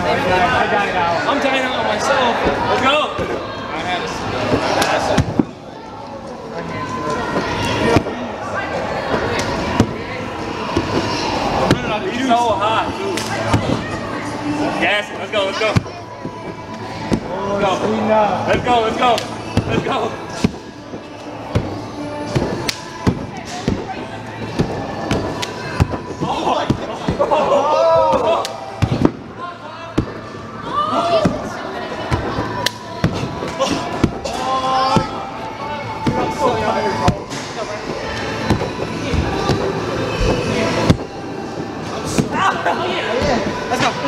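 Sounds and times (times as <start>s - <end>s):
background music: 0.0s - 44.0s
indistinct voices: 0.0s - 44.0s.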